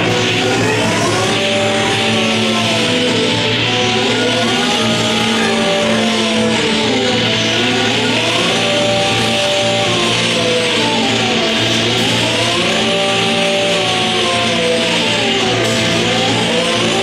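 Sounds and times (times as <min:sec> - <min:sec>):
gliding chord of tones: 0:00.0 - 0:17.0
low drone: 0:00.0 - 0:17.0.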